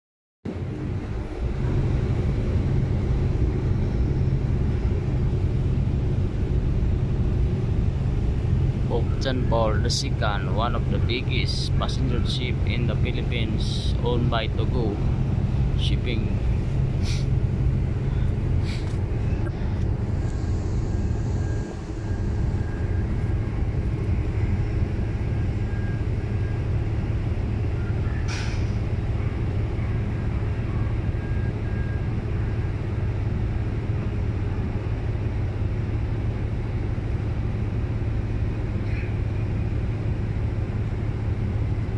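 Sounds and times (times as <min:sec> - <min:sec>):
ship engines rumbling: 0:00.5 - 0:41.9.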